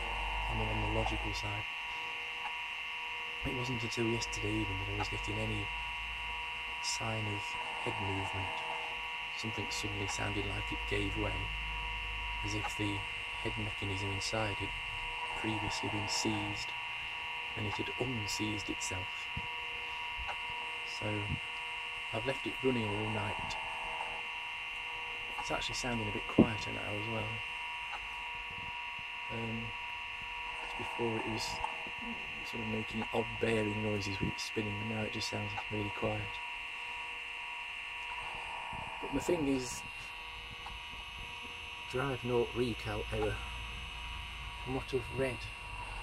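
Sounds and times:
hard drive hum and whine: 0.0 - 46.0.

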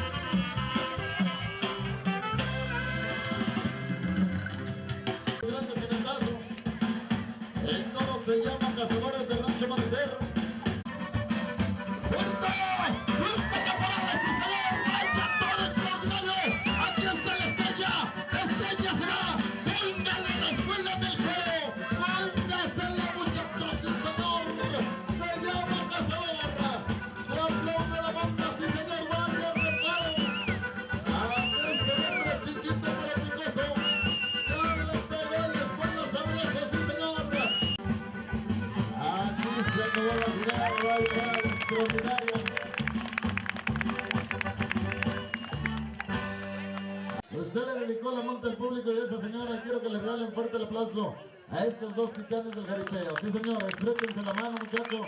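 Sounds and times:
band music with drum beat: 0.0 - 47.3.

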